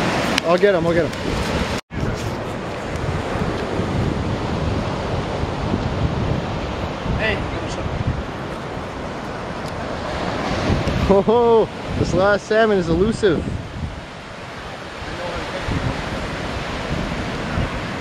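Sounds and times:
surf rushing: 0.0s - 18.0s
wind buffeting microphone: 0.0s - 18.0s.

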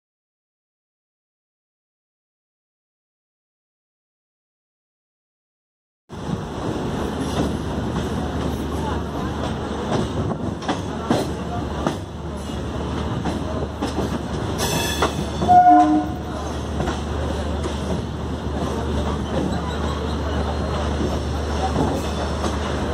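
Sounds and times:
train horn blast: 15.4s - 16.3s.

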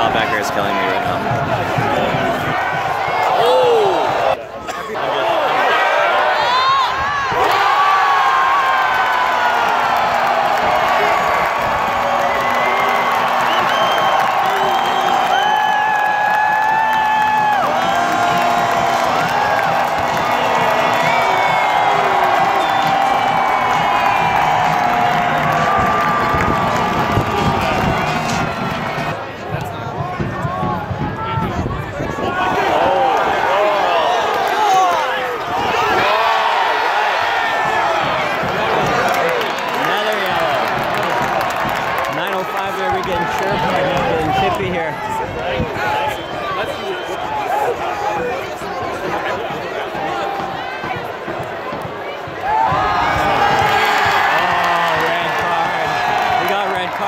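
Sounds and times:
stadium crowd cheering and chanting: 0.0s - 57.0s.

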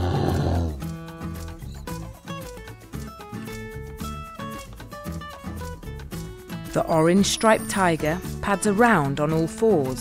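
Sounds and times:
bear growling: 0.0s - 0.9s
light background music: 0.0s - 10.0s.

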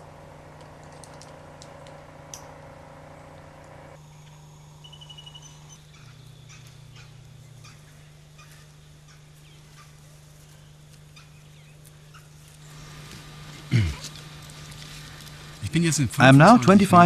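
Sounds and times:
steady low hum: 0.0s - 17.0s
thin bird calls: 4.0s - 13.1s
bird trill: 4.1s - 10.0s.

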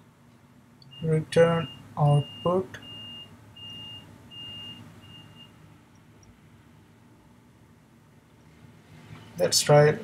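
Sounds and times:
faint low hum: 0.0s - 10.0s
high-pitched electronic beeps: 0.8s - 5.6s.

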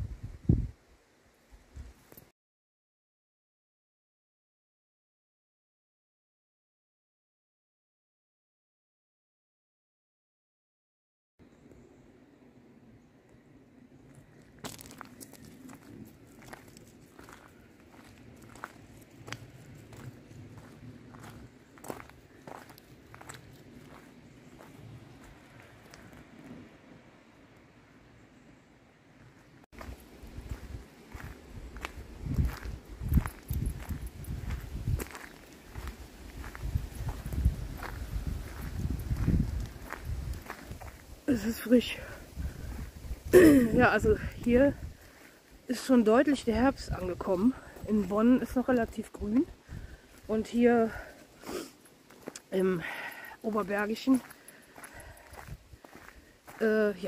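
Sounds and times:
light crunching footsteps outdoors: 13.2s - 28.5s, 29.1s - 57.0s.

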